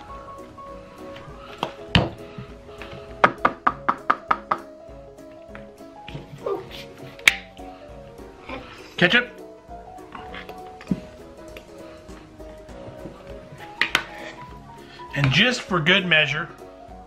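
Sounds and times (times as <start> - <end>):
upbeat background music: 0.0 - 17.0
plastic molds knocking on board: 1.6 - 2.2, 2.9 - 4.7.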